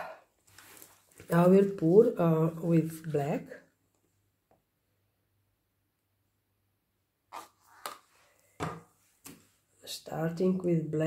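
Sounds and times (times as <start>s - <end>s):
knocks on a work table: 8.6s - 8.9s.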